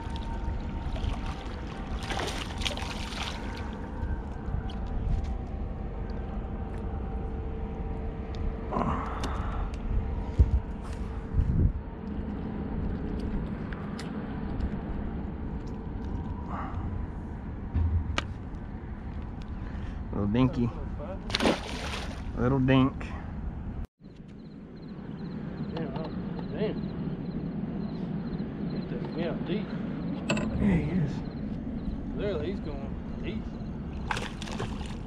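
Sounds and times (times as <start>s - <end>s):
splashy handling sounds: 0.0s - 3.9s, 21.3s - 22.4s, 34.0s - 35.0s
steady low rumble: 0.0s - 35.0s.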